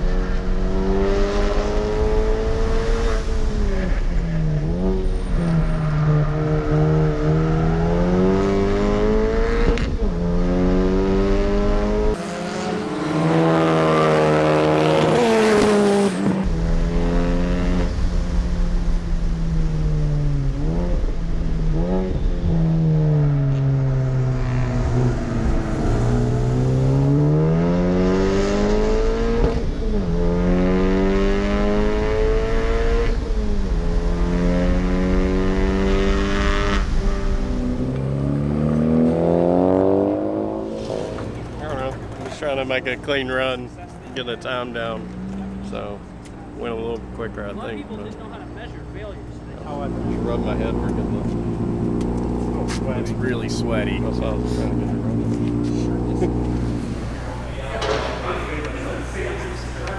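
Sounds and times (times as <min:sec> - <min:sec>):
car engine revving at full throttle: 0:00.0 - 0:59.9.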